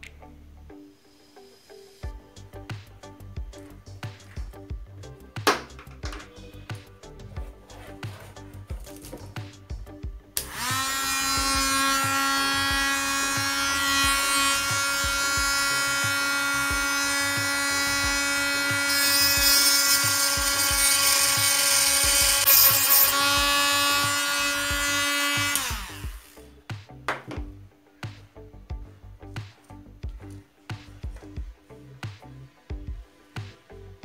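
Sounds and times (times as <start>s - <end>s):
rotary tool motor whining: 10.4s - 26.4s.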